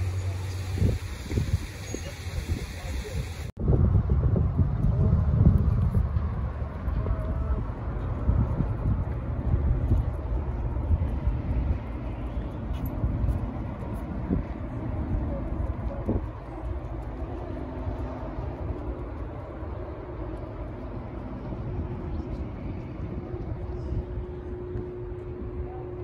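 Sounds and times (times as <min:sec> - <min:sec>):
distant engines humming: 0:00.0 - 0:03.2, 0:03.8 - 0:26.0
wind buffeting microphone: 0:00.0 - 0:26.0.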